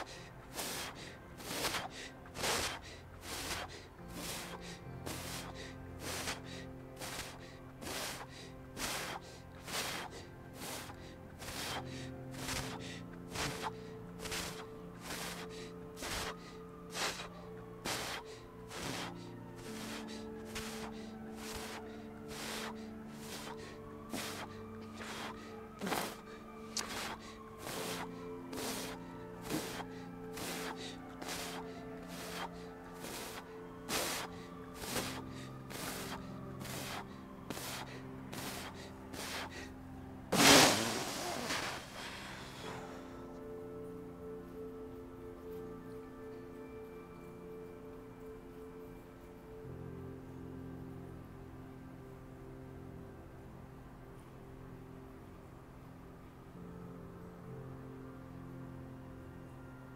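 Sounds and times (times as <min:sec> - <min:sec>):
rapid forceful breathing: 0:00.0 - 0:43.4
music of slow sustained chords: 0:00.0 - 0:59.9.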